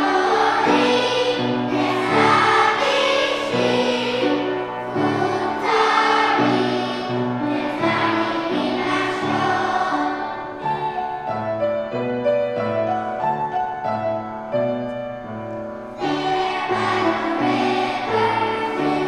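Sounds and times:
children's choir singing: 0.0 - 11.9, 15.8 - 19.0
piano playing chords: 0.0 - 19.0.

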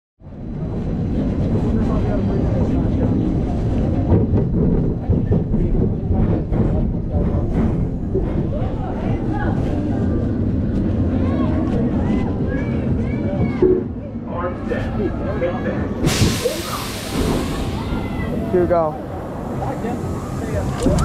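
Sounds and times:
low microphone rumble: 0.2 - 21.0.

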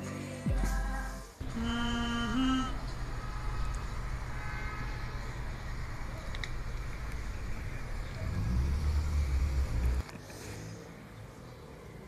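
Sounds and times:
deep low rumble: 5.0 - 10.0.

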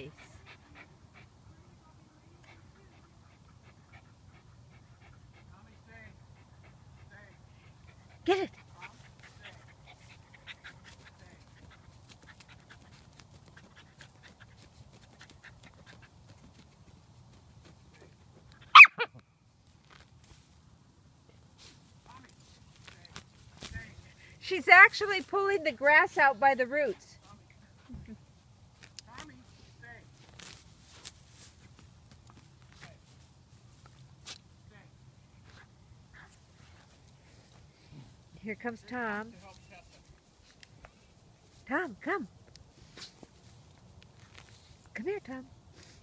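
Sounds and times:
dog barking: 18.7 - 19.1
scratching and rustling: 28.7 - 34.5.

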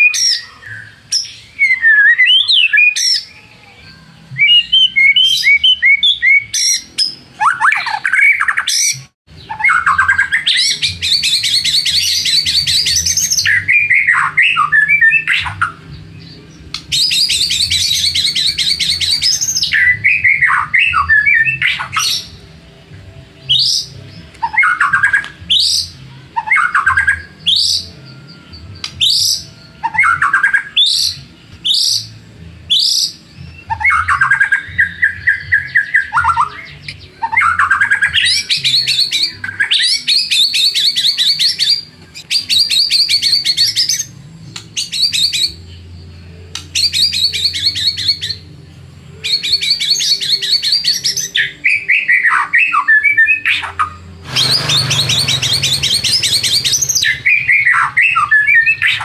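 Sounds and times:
songbird singing trills and whistles: 0.0 - 59.0.

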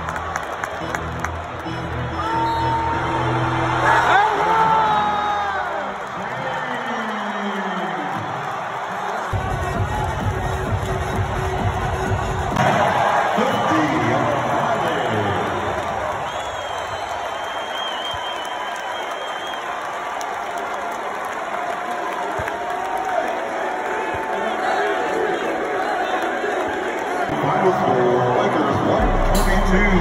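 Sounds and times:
crowd cheering and chattering: 0.0 - 30.0.

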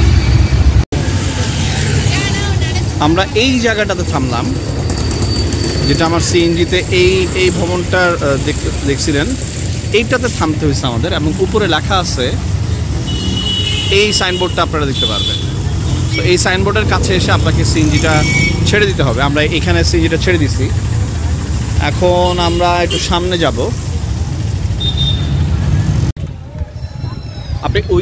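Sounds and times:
road traffic rumble: 0.0 - 28.0
vehicle horn: 13.0 - 16.3, 18.0 - 18.7, 22.2 - 23.2, 24.8 - 25.5.

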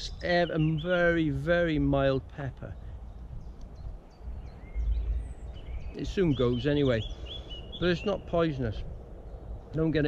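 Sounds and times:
faint birdsong chirps: 0.0 - 10.0
low rumble: 3.0 - 6.6.

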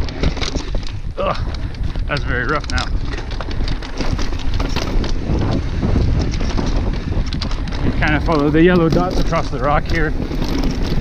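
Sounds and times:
bike rattling and knocking: 0.0 - 11.0
wind rumbling on microphone: 0.0 - 11.0.

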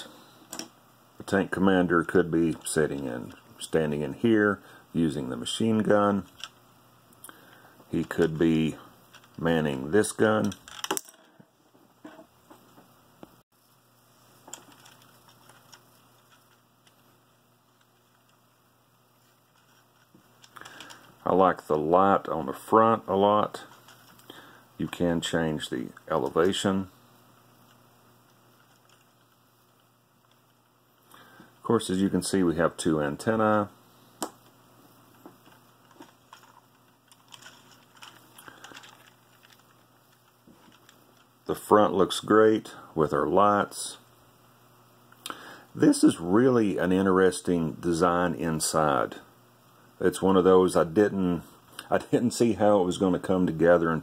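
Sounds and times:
plastic parts clicking: 10.4 - 11.4, 35.3 - 41.3.

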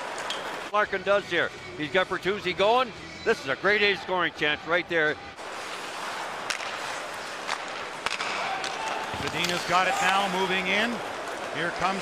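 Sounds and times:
crowd noise: 0.0 - 12.0
skates on ice: 5.4 - 12.0
stick hitting puck: 6.4 - 10.2.

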